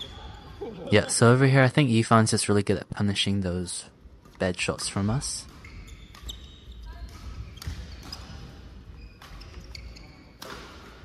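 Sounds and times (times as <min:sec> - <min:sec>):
shoes squeaking on court floor: 0:00.0 - 0:00.9, 0:05.4 - 0:11.0.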